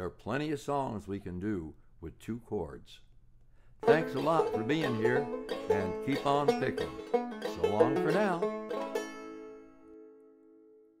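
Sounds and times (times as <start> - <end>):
banjo chord ringing: 3.8 - 10.9.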